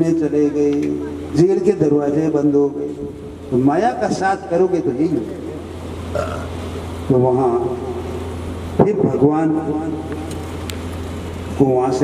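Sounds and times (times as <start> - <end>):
man's amplified voice: 0.0 - 5.7, 7.1 - 8.2, 8.8 - 10.3, 11.6 - 12.0
low electrical hum: 0.0 - 12.0
low vocal sound: 6.1 - 6.6.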